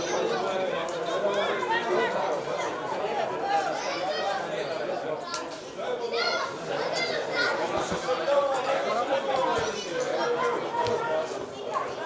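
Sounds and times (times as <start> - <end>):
spectators chattering and calling out: 0.0 - 12.0.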